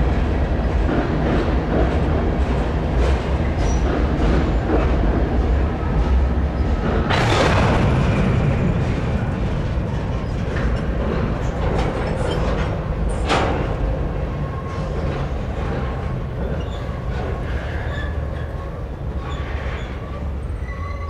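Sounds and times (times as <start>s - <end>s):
train wheels rumbling on rail: 0.0s - 21.0s
high wheel squeal: 19.2s - 21.0s.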